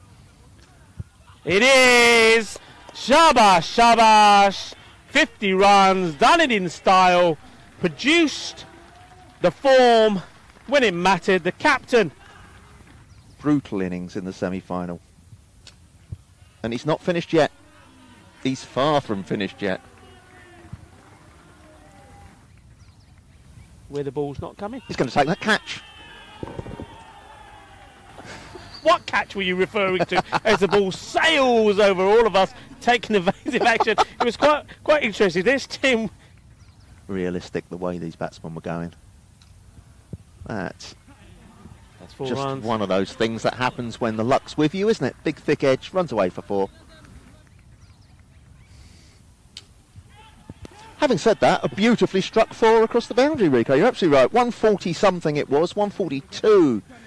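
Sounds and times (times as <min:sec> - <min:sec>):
distant voices calling: 0:00.0 - 0:57.0
faint calls or chirps: 0:27.8 - 0:30.6.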